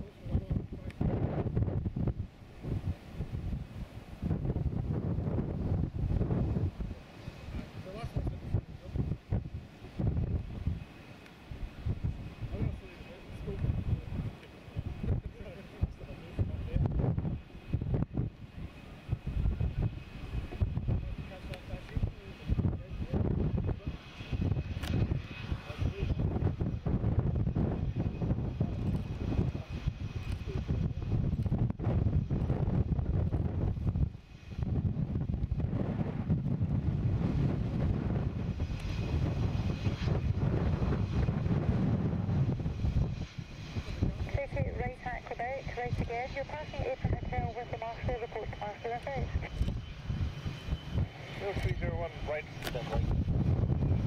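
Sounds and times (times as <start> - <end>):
jet engines rumbling: 0.0 - 54.0
wind gusts on microphone: 0.0 - 54.0
person talking: 44.2 - 49.5.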